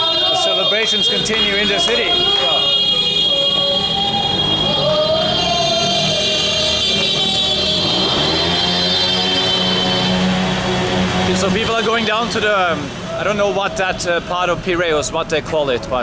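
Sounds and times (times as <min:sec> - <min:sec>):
voices of people celebrating: 0:00.0 - 0:08.8, 0:11.4 - 0:14.7
vehicle engines running: 0:00.0 - 0:16.0
engine rising in pitch: 0:03.2 - 0:13.3.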